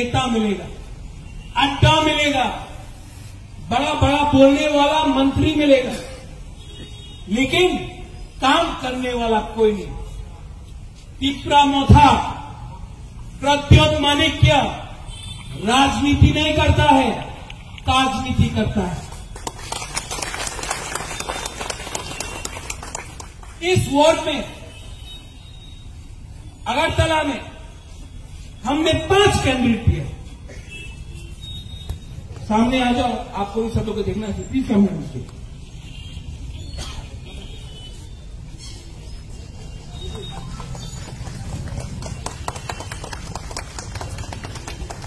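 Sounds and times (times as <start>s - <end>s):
audience clapping: 19.0s - 23.6s, 40.0s - 45.0s.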